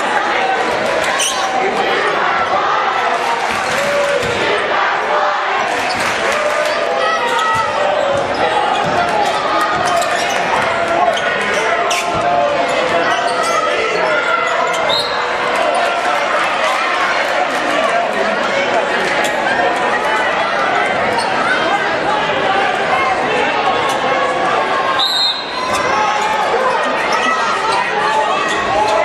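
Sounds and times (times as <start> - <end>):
crowd din echoing: 0.0 - 29.0.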